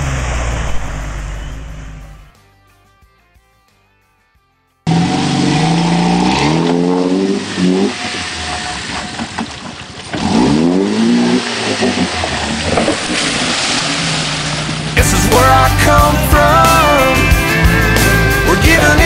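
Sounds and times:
engine revving hard: 4.9s - 9.2s, 10.1s - 15.5s
tyres churning mud and water: 4.9s - 15.1s.

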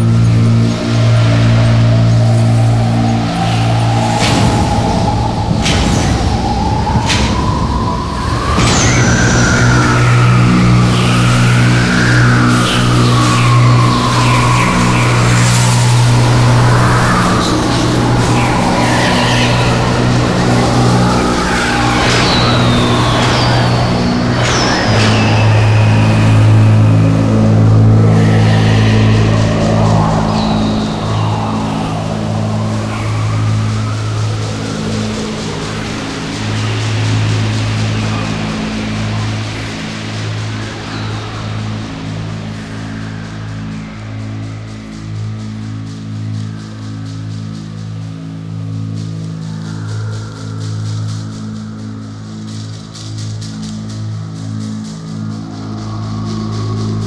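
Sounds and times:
panpipe ensemble drone: 0.0s - 57.0s
sliding whistle-like tones: 0.0s - 57.0s.

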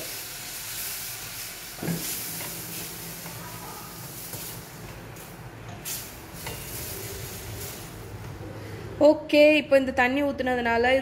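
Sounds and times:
filling sizzling in a pan: 0.0s - 8.2s.

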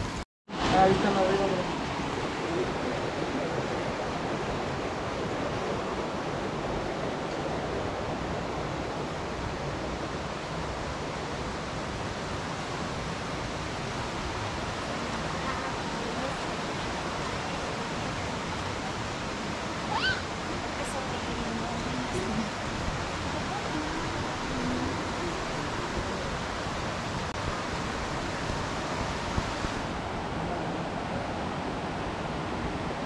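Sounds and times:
stream rushing over rocks: 0.0s - 33.0s.

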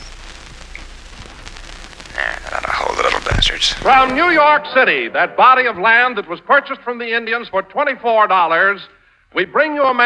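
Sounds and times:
faint crackle: 0.0s - 4.4s
steady hiss: 0.0s - 10.0s.

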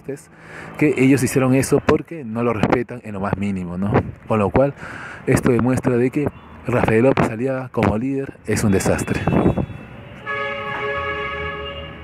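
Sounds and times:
held horn-like chord: 10.2s - 12.0s.

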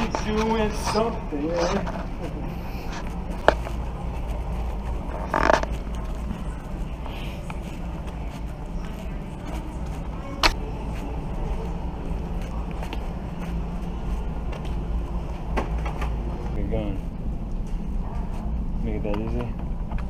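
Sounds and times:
steady low rumble: 0.0s - 20.0s.

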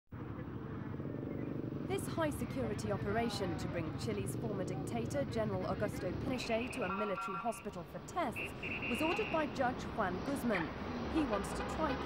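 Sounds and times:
traffic noise: 0.1s - 12.0s
vehicle engines humming: 0.2s - 12.0s.

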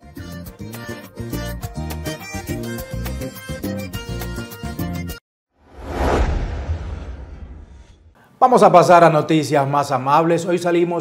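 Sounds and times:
whoosh with deep rumble: 5.6s - 8.2s.

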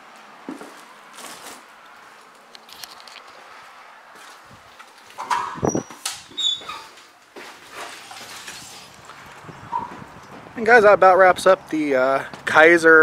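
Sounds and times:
glass door clunk: 5.2s - 6.5s
door squeaking: 5.2s - 7.1s, 9.6s - 10.1s.

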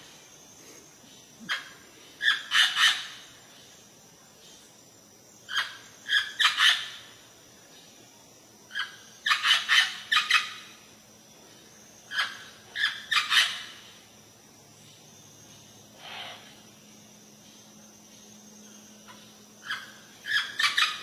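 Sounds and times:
parrot calling: 19.6s - 21.0s.

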